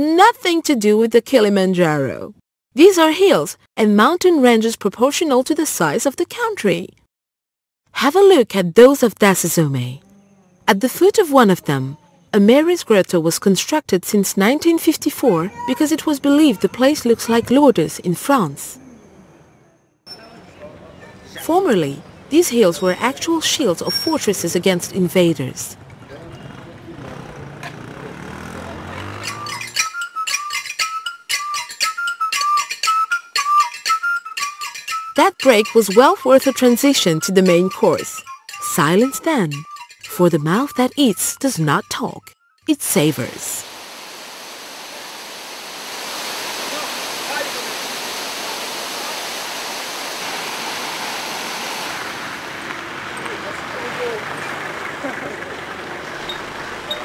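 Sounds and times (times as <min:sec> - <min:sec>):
fast percussion strokes: 0:29.0 - 0:42.0
high whistle melody: 0:29.2 - 0:42.7
waterfall pouring over rocks: 0:43.6 - 0:54.2.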